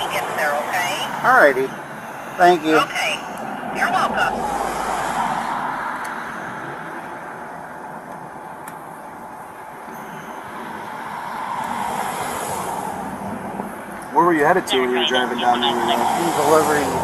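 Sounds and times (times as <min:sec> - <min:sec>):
cars passing on street: 0:00.0 - 0:17.0.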